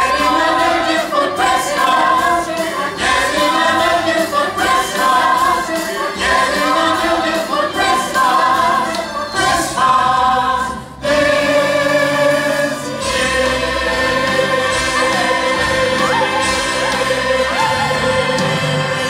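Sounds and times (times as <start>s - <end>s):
cast singing in chorus: 0.0s - 19.0s
music accompaniment: 0.0s - 19.0s.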